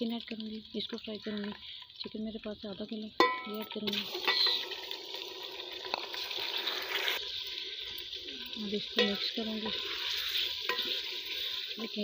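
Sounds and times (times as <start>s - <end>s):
chicken sizzling in oil: 0.0s - 12.0s.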